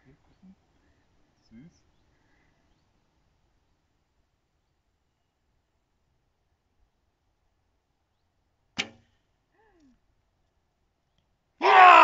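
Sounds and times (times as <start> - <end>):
bow string snapping: 8.7 - 9.2.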